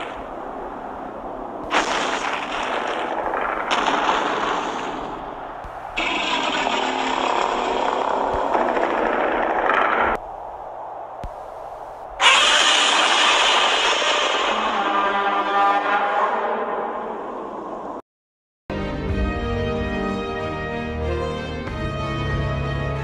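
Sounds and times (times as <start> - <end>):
loud dense rushing noise: 0.0 - 15.2.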